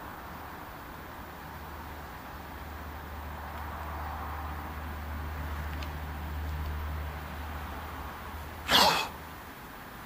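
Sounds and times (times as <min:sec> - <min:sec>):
man sneezing: 0:08.7 - 0:09.2.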